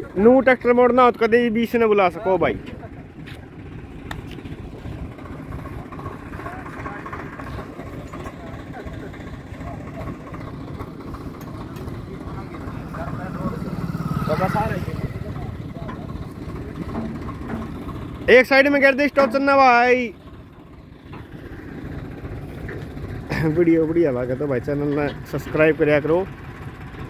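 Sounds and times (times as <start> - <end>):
tractor diesel engine idling: 0.0 - 27.0.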